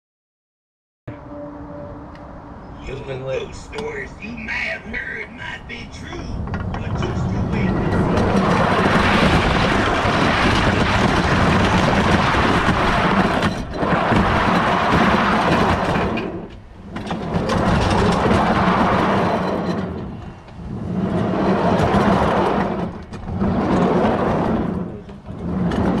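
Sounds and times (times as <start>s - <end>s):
roller coaster wheels rumbling: 1.1s - 26.0s.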